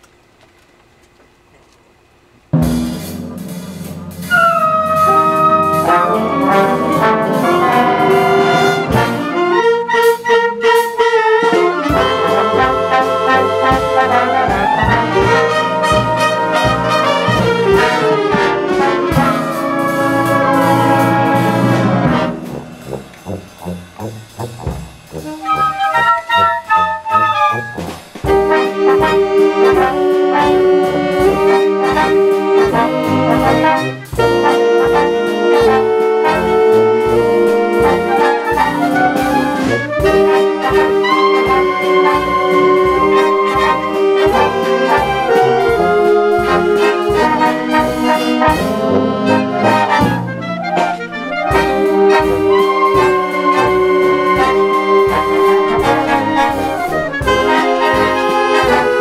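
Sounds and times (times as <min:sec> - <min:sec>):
concert band playing jazz: 0:02.5 - 0:59.0.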